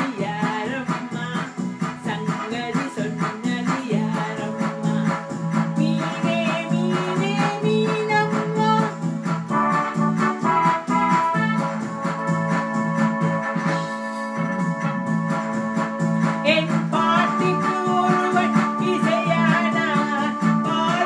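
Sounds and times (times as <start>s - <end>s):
electronic keyboard organ melody: 0.0s - 21.0s
steady drum beat: 0.0s - 21.0s.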